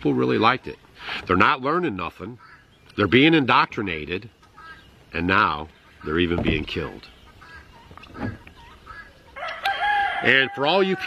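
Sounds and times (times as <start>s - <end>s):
poultry calling: 2.0s - 11.0s.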